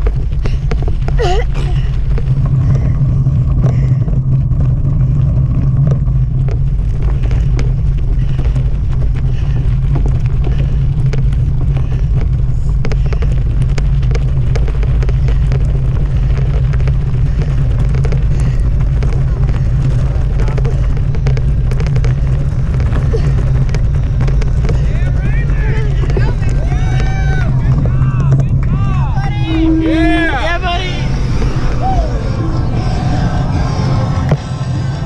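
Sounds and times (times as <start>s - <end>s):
bike rattles and clicks: 0.0s - 33.6s
bicycle tyre noise: 0.0s - 35.0s
wind rumble on microphone: 0.0s - 35.0s.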